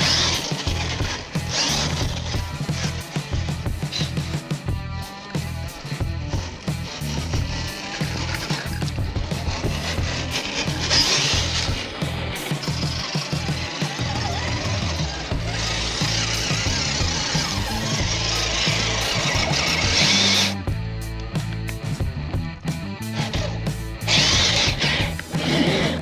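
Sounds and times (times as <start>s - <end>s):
rock music: 0.0s - 26.0s.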